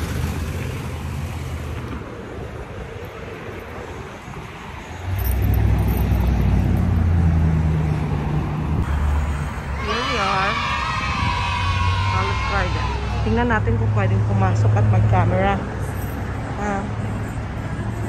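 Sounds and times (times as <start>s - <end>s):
wind rumbling on microphone: 0.0s - 12.4s
road traffic: 0.0s - 18.0s.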